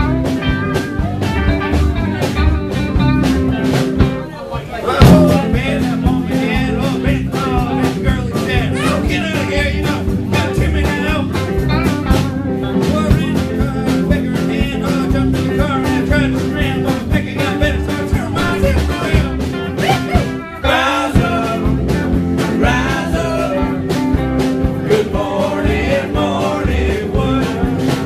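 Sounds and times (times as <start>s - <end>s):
electric guitar: 0.0s - 4.3s, 4.9s - 28.0s
bass guitar: 0.0s - 28.0s
steady drum beat: 0.0s - 28.0s
person singing: 4.8s - 11.5s, 12.7s - 24.0s.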